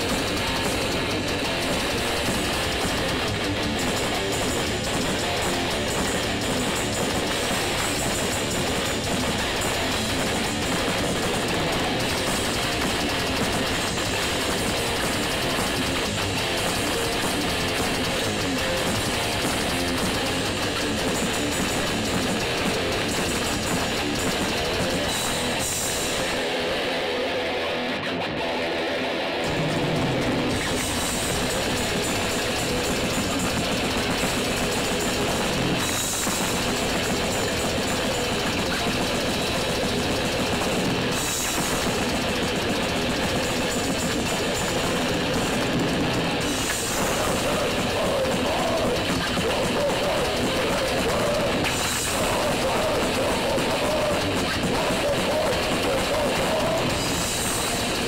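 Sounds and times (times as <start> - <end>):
metal band playing live: 0.0 - 58.0.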